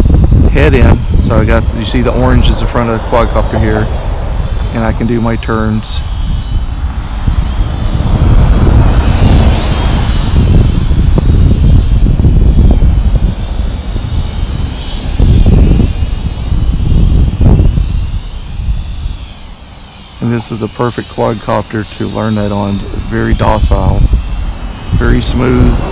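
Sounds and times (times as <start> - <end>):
low rumble: 0.0 - 19.7, 22.8 - 25.9
drone propellers whining: 0.0 - 25.9.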